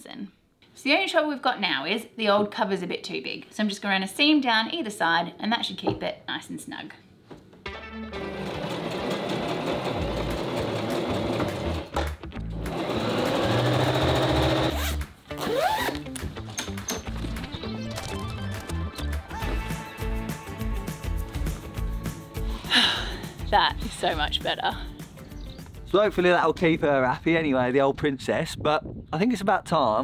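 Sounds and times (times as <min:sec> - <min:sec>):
background music: 0:07.6 - 0:27.4
electric sewing machine running: 0:08.2 - 0:11.9, 0:12.6 - 0:14.8.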